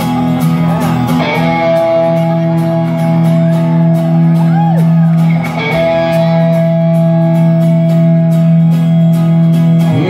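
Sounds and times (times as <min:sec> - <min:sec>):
instrumental rock music: 0:00.0 - 0:10.0.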